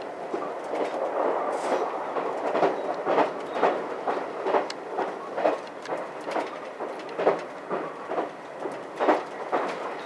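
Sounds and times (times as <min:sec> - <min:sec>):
train running rumble: 0:00.0 - 0:10.0
wheels clicking over rail joints: 0:00.2 - 0:10.0.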